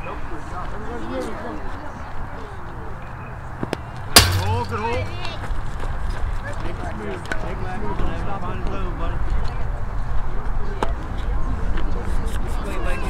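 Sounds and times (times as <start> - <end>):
sharp crack: 4.2 - 5.4.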